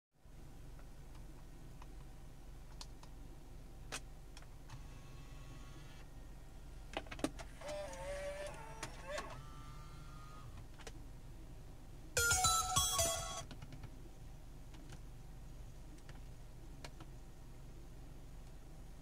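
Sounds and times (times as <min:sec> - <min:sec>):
whirring motor: 0:04.7 - 0:06.1, 0:07.5 - 0:10.6.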